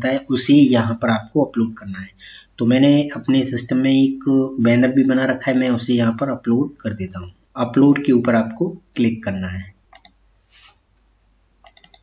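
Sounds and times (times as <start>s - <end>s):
computer mouse clicks: 9.9s - 10.2s, 11.6s - 12.0s.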